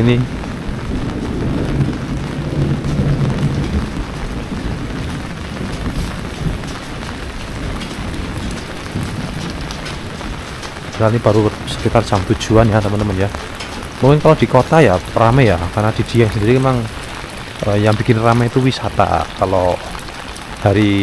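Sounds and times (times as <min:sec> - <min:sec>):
heavy rain on pavement: 0:00.0 - 0:21.0.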